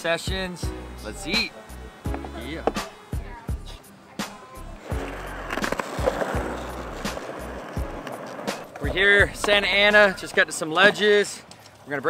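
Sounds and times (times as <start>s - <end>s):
background music: 0.0s - 10.7s
skateboard wheels on concrete: 0.0s - 12.0s.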